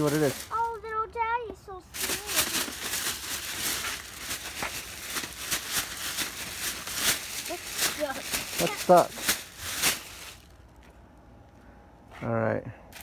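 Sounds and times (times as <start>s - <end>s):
plastic bag rustling: 0.0s - 0.9s, 1.9s - 10.9s.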